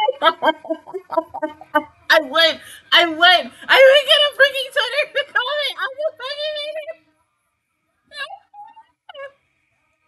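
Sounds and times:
wavering vocal sounds: 0.0s - 2.6s, 8.2s - 9.4s.

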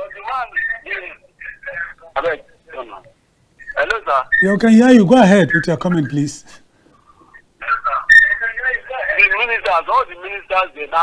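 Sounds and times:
voice over telephone line: 0.0s - 6.6s, 7.6s - 11.0s.

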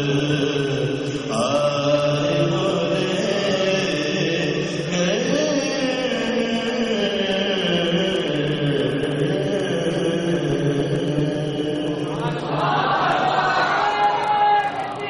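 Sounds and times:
men chanting: 0.0s - 15.0s.

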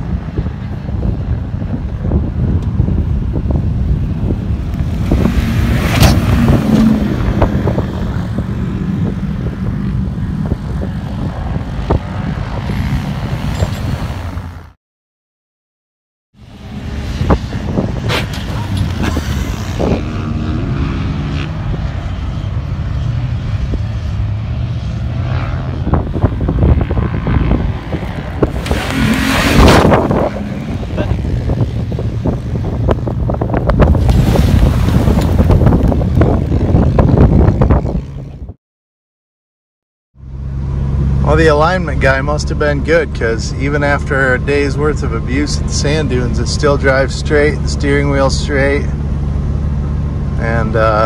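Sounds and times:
truck engine revving: 4.7s - 10.8s, 23.0s - 37.9s
loud rush of noise: 16.4s - 38.6s.

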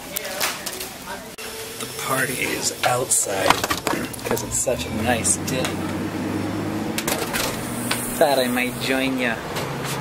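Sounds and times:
steady low hum: 1.4s - 8.9s.

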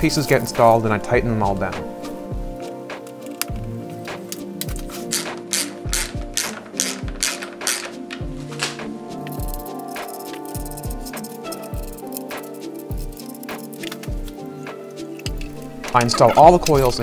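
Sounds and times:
background music with steady beat: 0.0s - 17.0s
hand ratchet clicking: 3.0s - 17.0s.

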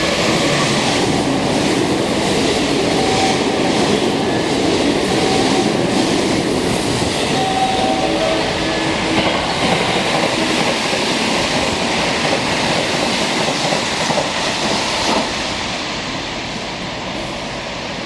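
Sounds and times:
train rushing past: 0.0s - 18.0s.

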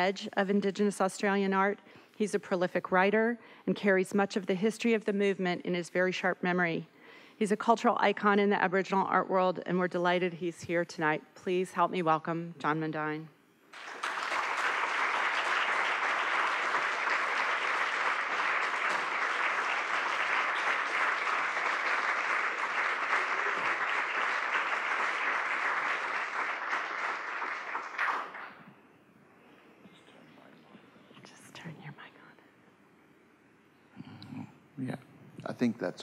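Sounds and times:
audience applauding: 13.7s - 28.7s.

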